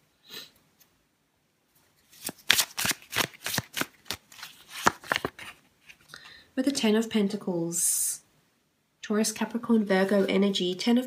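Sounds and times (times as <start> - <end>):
cards being shuffled: 2.0 - 6.1.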